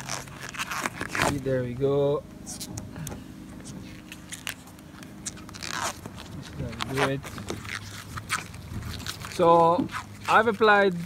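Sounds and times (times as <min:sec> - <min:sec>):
tearing rip: 0:00.0 - 0:01.6, 0:03.9 - 0:11.0
rubber coating peeling crackles: 0:00.0 - 0:11.0.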